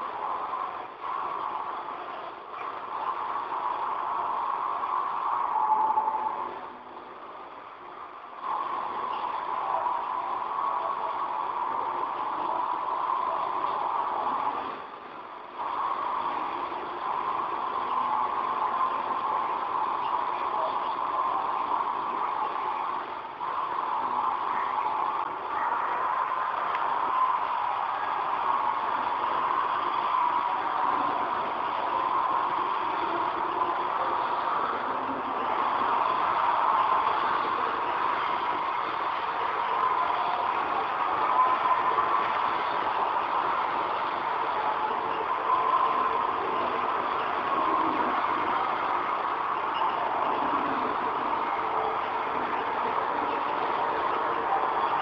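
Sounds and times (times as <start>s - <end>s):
hiss and murmur of old recording: 0.0s - 55.0s.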